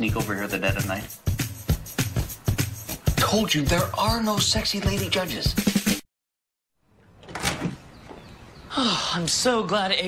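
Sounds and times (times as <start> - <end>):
door opening: 7.0 - 8.4.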